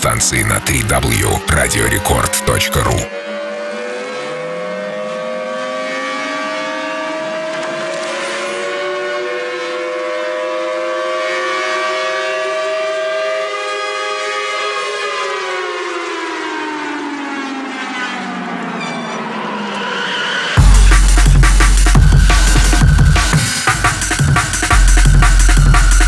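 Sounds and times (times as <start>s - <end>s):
beatless electronic music: 0.0s - 3.1s, 20.6s - 26.0s.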